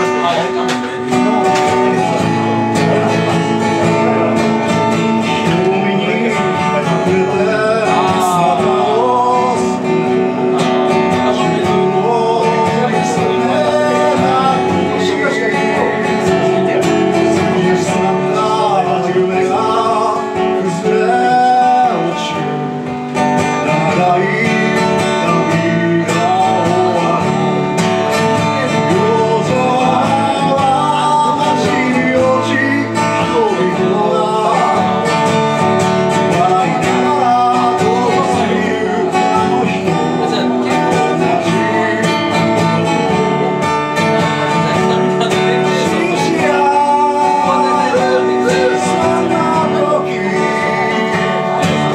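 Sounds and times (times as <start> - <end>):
acoustic guitar strumming: 0.0 - 51.9
man singing: 0.0 - 51.9.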